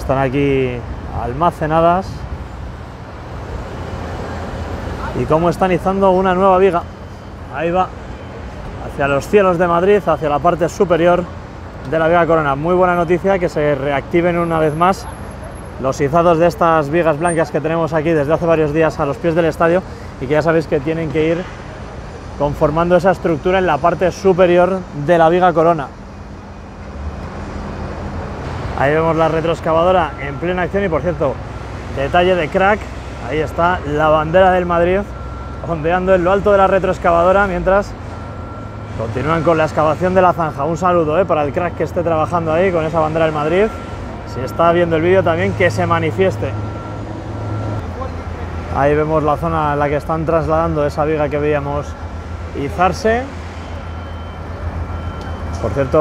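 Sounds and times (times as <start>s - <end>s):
city traffic noise: 0.0s - 56.0s
engines rumbling: 0.0s - 56.0s.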